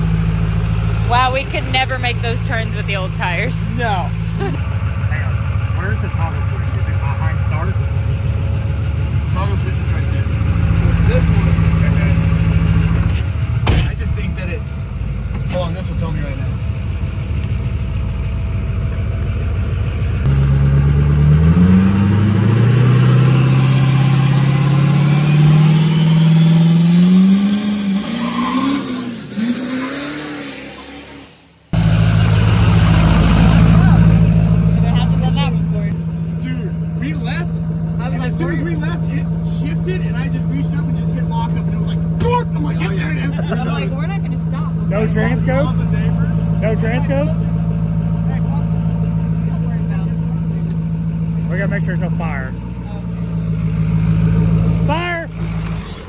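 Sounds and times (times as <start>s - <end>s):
diesel truck engine idling: 0.0s - 21.1s, 31.7s - 56.0s
truck accelerating hard: 0.0s - 56.0s.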